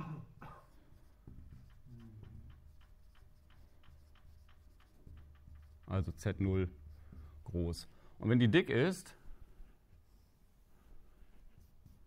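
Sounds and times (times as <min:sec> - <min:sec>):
faint ticking: 0:01.0 - 0:08.2.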